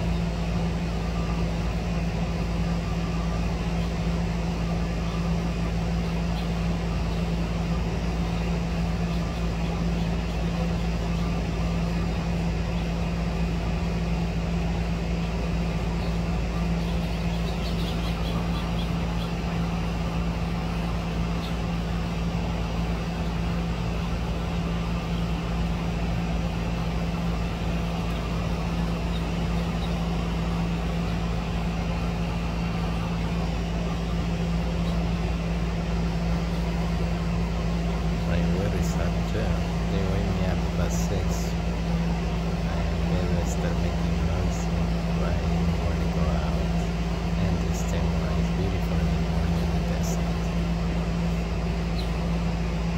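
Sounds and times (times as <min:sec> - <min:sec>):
low machine hum: 0:00.0 - 0:52.9.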